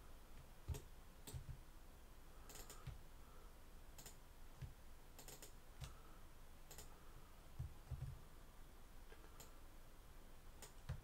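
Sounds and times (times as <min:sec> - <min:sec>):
mouse and keyboard clicks: 0:02.4 - 0:03.0, 0:04.0 - 0:06.0, 0:06.7 - 0:06.9, 0:10.6 - 0:11.0.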